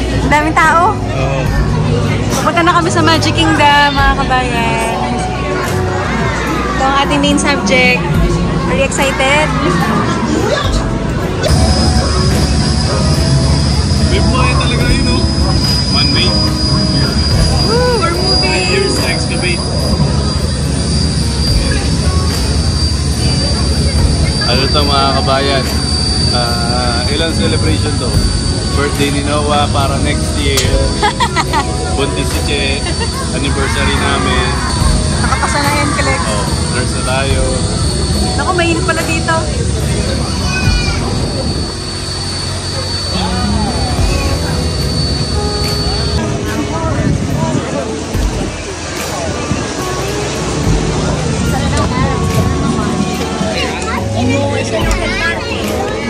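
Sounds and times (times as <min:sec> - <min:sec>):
high whine: 0:00.0 - 0:56.0
passengers chattering: 0:00.0 - 0:56.0
ship engine deep rumble: 0:00.0 - 0:56.0.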